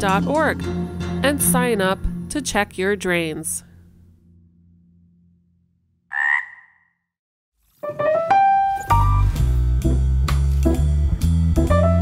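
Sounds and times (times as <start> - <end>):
cartoon frog croak: 6.1 - 7.0.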